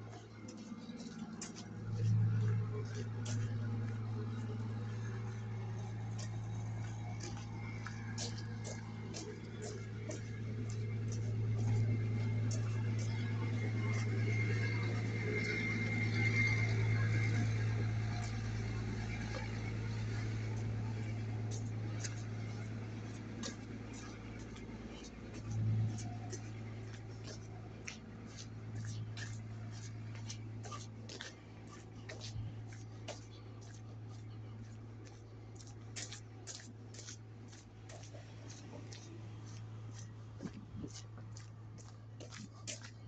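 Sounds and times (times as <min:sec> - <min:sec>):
footsteps on pavement: 0:00.0 - 0:43.0
low mechanical hum: 0:00.0 - 0:43.0.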